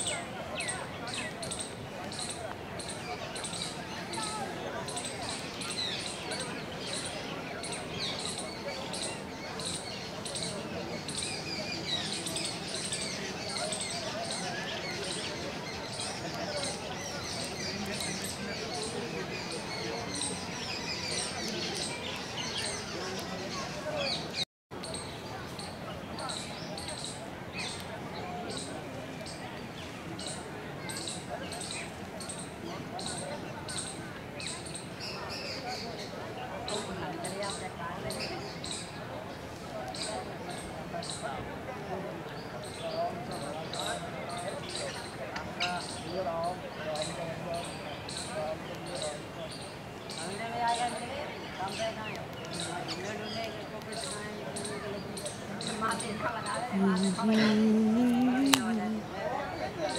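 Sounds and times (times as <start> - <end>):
small birds chirping: 42.3 - 59.9.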